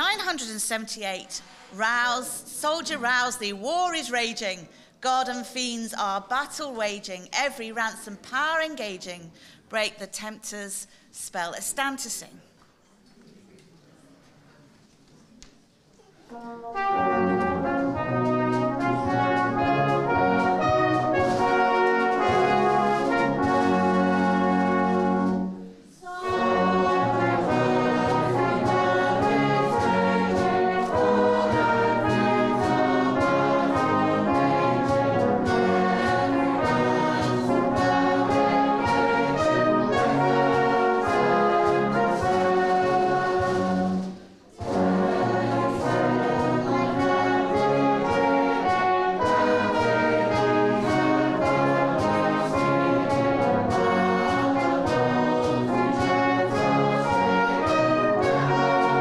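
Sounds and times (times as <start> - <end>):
brass band playing a hymn: 16.3 - 59.0.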